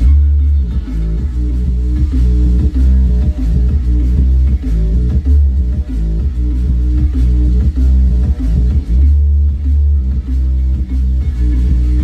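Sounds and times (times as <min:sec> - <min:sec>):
bass-heavy electronic music: 0:00.0 - 0:12.0.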